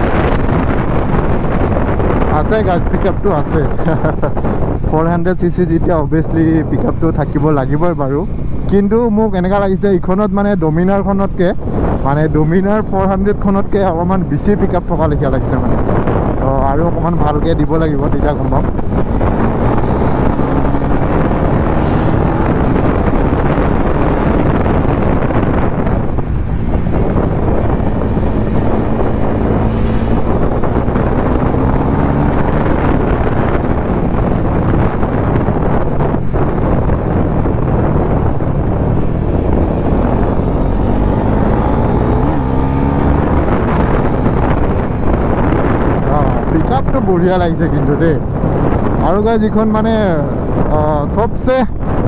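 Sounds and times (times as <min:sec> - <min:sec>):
wind noise on microphone: 0:00.0 - 0:52.0
motorcycle engine revving: 0:18.4 - 0:46.5.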